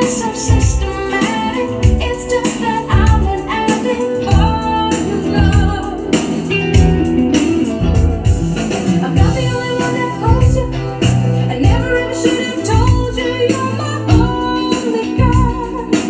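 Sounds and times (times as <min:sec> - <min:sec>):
person singing: 0:00.0 - 0:07.8, 0:08.8 - 0:16.0
steady beat: 0:00.0 - 0:14.4
guitar: 0:00.0 - 0:16.0.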